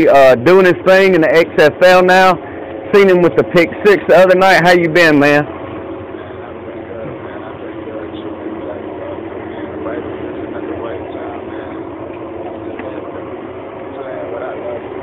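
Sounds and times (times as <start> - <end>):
man talking over a telephone: 0.0 - 5.5.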